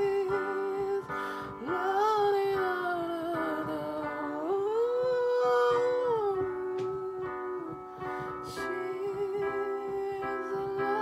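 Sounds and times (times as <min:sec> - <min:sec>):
digital piano chords: 0:00.0 - 0:11.0.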